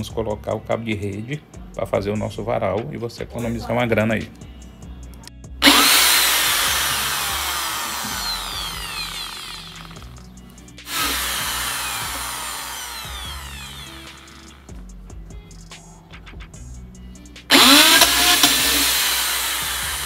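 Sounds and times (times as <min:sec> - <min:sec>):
electric drill boring into plastic pipe: 0:05.6 - 0:10.2, 0:10.8 - 0:14.7, 0:17.5 - 0:20.0.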